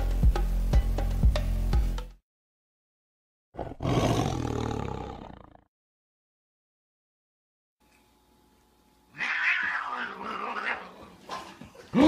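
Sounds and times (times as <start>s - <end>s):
cat yowling aggressively: 9.1s - 11.1s.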